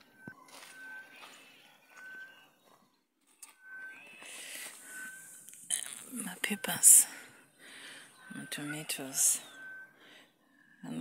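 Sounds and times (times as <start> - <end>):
footsteps on dry soil and leaves: 0.0 - 3.5.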